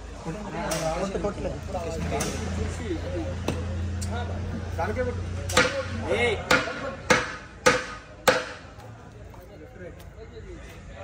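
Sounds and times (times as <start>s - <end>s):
coconut knocking on wood: 5.5s - 8.7s.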